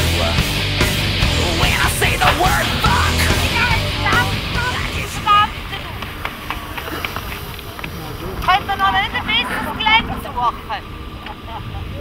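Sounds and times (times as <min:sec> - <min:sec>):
steady low rumble: 0:00.0 - 0:12.0
people calling out in wavering tones: 0:01.2 - 0:06.0.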